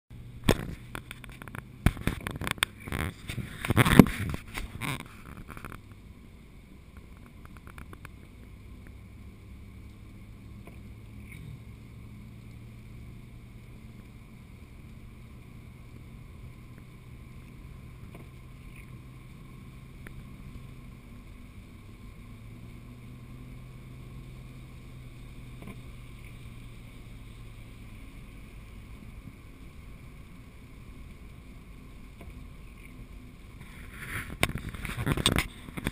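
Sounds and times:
car engine hum and road rumble: 0.1 - 35.9.

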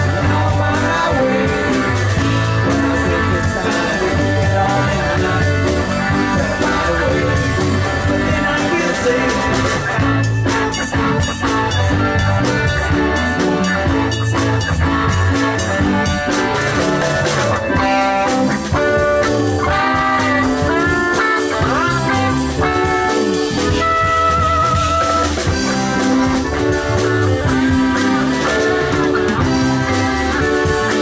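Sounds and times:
lead guitar with pitch bends: 0.0 - 31.0
rock band jamming: 0.0 - 31.0.

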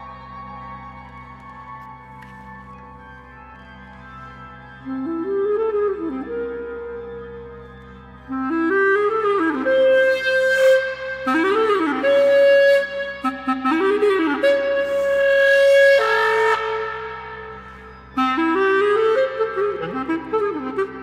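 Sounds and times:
clarinet playing runs: 0.0 - 21.0.

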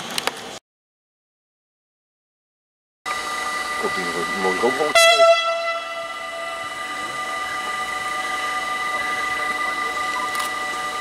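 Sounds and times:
steady high whine: 3.1 - 11.0.

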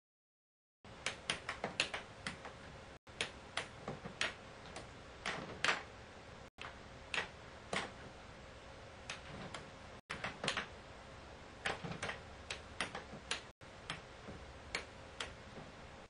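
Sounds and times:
faint steady hum: 0.9 - 16.0.

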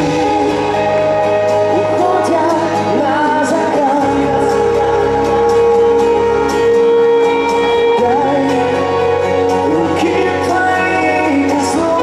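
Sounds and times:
instrumental backing of held chords: 0.0 - 12.0
man singing pop song: 0.0 - 12.0.

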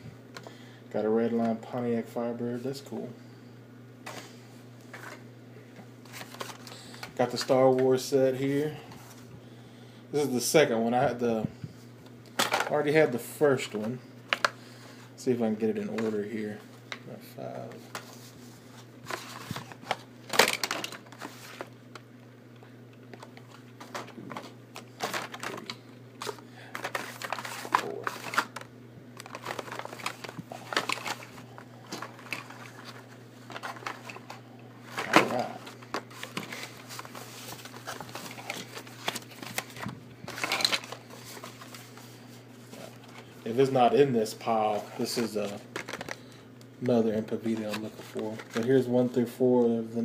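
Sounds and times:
low steady hum: 0.0 - 50.0
plastic packs crinkling and clacking: 12.2 - 14.6, 19.0 - 22.0, 23.1 - 42.0, 44.7 - 49.2.

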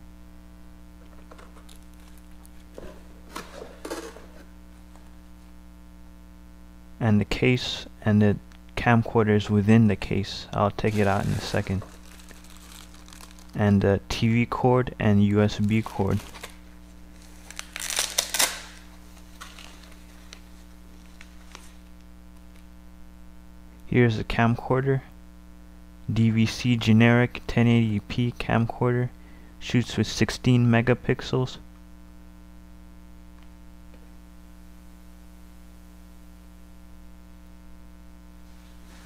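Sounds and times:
steady low hum: 0.0 - 39.0
paper and plastic rustling: 1.1 - 5.1, 10.8 - 13.6, 15.5 - 21.8.

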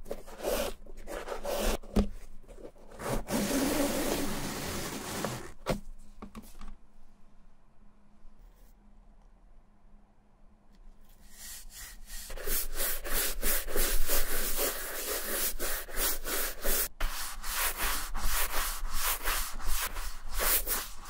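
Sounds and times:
brush sweeping over shoe: 11.1 - 21.0.

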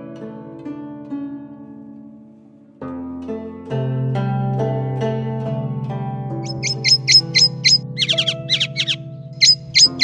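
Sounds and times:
plucked string music: 0.0 - 10.0
songbird chirping: 6.4 - 10.0.

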